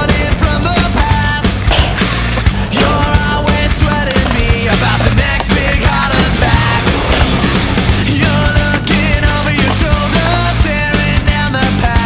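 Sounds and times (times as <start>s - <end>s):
loud rock music: 0.0s - 12.0s.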